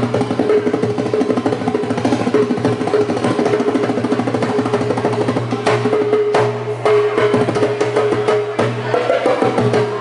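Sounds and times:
hand drum played fast: 0:00.0 - 0:10.0.

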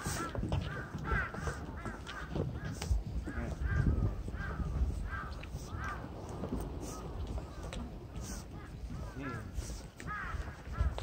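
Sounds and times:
bird harsh calls: 0:00.0 - 0:11.0
low rumble: 0:03.8 - 0:09.6.

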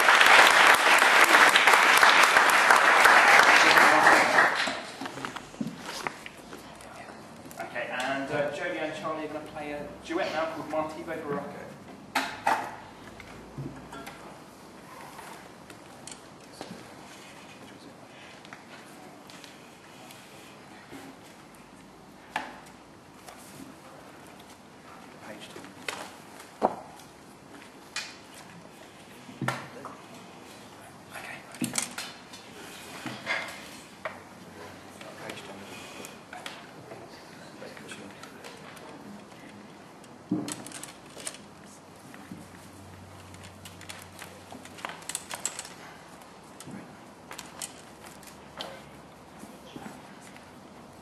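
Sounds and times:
knocks of instruments being handled: 0:40.2 - 0:41.4.

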